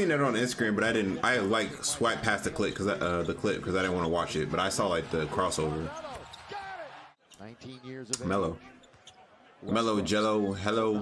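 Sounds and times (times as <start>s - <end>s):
broadcast commentary: 0.0s - 11.0s.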